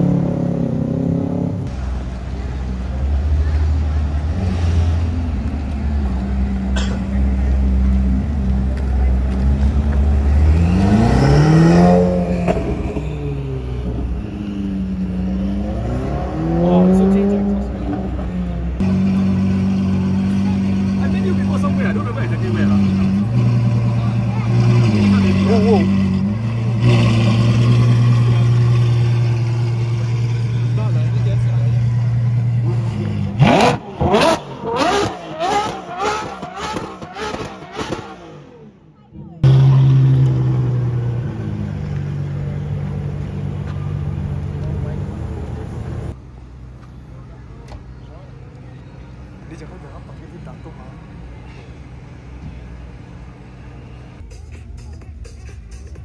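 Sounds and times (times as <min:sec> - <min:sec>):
car engine revving: 0:00.0 - 0:46.2
car driving away: 0:00.0 - 0:54.2.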